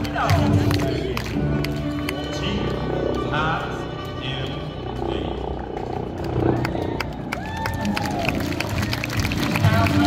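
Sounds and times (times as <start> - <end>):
people clapping: 0.0 - 3.2, 6.1 - 10.0
country song over speakers: 0.0 - 5.6, 9.2 - 10.0.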